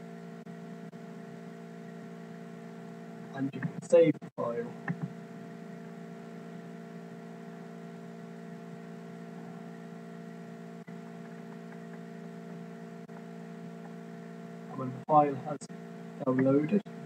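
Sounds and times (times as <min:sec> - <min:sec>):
electrical hum: 0:00.0 - 0:17.0.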